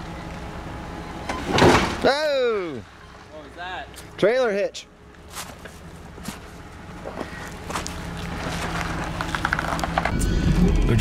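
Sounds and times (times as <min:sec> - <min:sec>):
car engine at slow crawl: 0:05.0 - 0:11.0
tyres crunching on gravel: 0:05.2 - 0:10.2.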